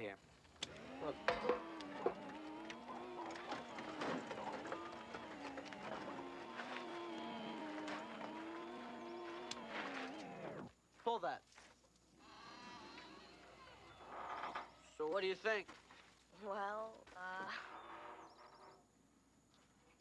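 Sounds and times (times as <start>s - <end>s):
electric wheelchair motor whining: 0.4s - 10.7s, 12.2s - 15.0s
small clicks and knocks: 0.5s - 10.7s.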